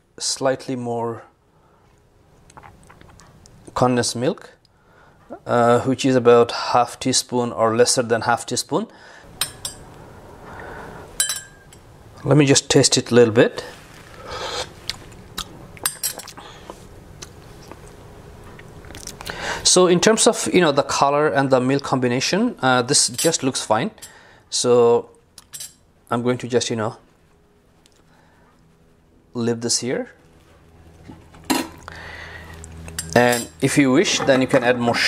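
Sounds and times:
metal spoon clinking glass cup: 0:11.2 - 0:11.8.

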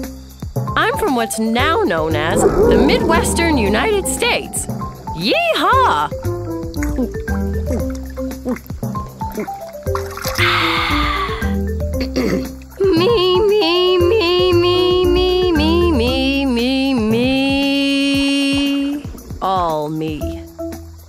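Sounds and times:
cartoon background music: 0:00.7 - 0:20.9
cartoon dinosaur voice roaring: 0:02.1 - 0:06.1.

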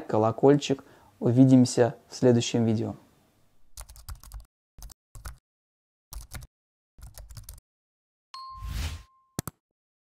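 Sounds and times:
bell-like ding: 0:08.4 - 0:09.4
whoosh: 0:08.6 - 0:09.1.

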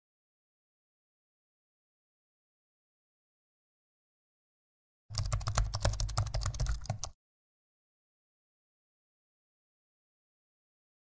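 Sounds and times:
keyboard typing clicks: 0:05.1 - 0:07.2.

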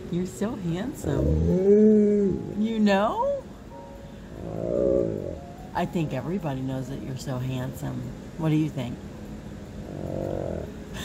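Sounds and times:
dog grumbling vocalisation: 0:01.0 - 0:02.6, 0:04.4 - 0:05.4, 0:09.8 - 0:10.8.

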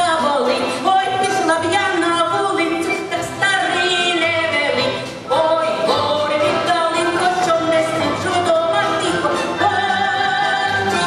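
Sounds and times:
folk band playing: 0:00.0 - 0:11.0
woman singing folk song: 0:00.0 - 0:11.0.

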